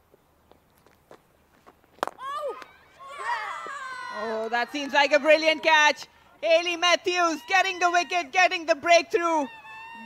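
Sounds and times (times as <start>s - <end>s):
players shouting: 2.2s - 10.0s.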